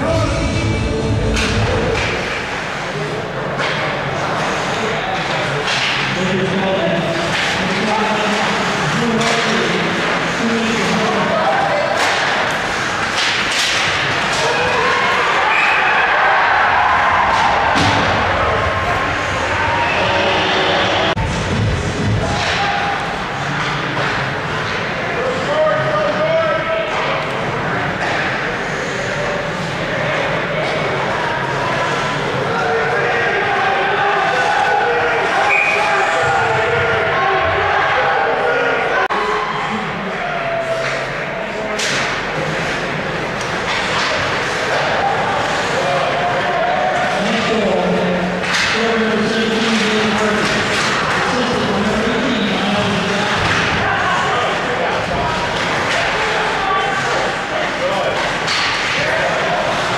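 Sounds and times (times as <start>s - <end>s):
puck and players hitting boards: 3.5s - 6.4s, 7.1s - 15.6s, 27.9s - 28.5s, 41.8s - 45.8s, 48.4s - 54.0s, 58.1s - 59.9s
spectators shouting: 14.2s - 21.2s, 31.4s - 41.3s.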